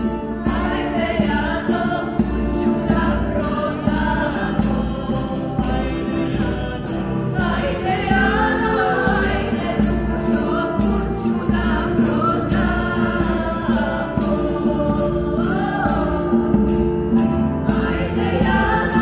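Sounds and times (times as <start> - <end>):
hand drum beats: 0.0 - 19.0
vocal group singing in harmony: 0.0 - 19.0.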